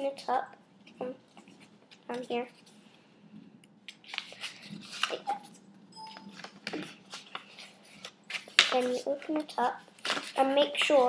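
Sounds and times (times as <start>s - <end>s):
paper rustling and crinkling: 3.9s - 5.6s, 6.2s - 11.0s.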